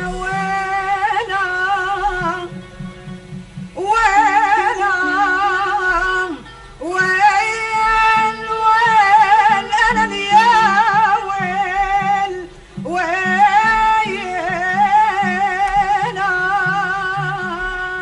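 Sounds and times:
woman singing with vibrato: 0.0s - 2.9s, 3.7s - 18.0s
instrumental accompaniment: 0.0s - 18.0s.

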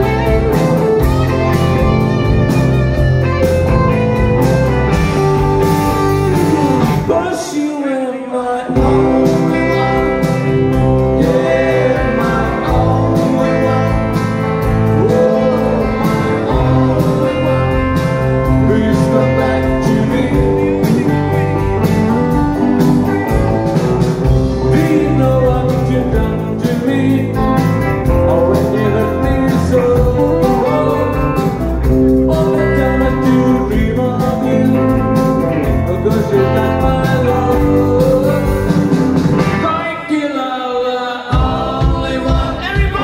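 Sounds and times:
drum kit: 0.0s - 7.2s, 8.8s - 40.0s, 41.3s - 43.0s
distorted electric guitars: 0.0s - 7.3s, 8.7s - 40.0s
electric bass: 0.0s - 7.3s, 8.8s - 39.9s.

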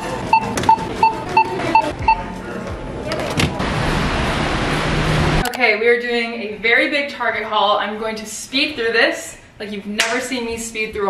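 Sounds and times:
barcode scanner beeping: 0.0s - 2.2s.

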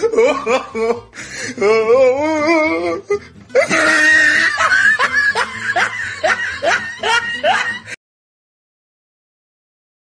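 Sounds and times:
person laughing in short bursts: 3.6s - 8.0s.

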